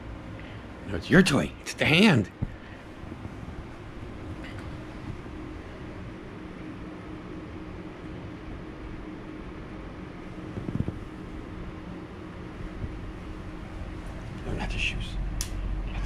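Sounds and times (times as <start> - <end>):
low room hum: 0.0 - 16.0.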